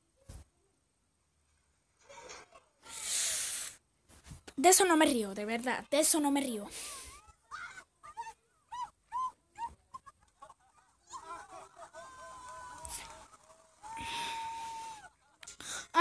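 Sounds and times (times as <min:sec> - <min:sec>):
woman screaming: 0:13.8 - 0:15.1.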